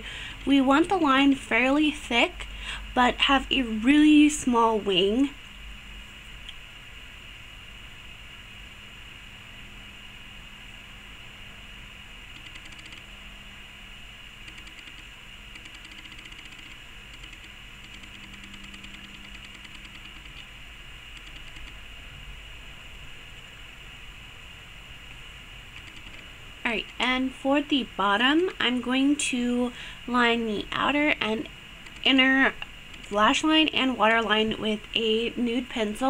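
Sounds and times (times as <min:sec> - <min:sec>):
background hiss: 0:00.0 - 0:36.0
faint low hum: 0:00.0 - 0:36.0
faint rapid ticking: 0:12.3 - 0:13.1, 0:14.4 - 0:20.5, 0:21.1 - 0:21.9, 0:25.7 - 0:27.8, 0:29.2 - 0:36.0.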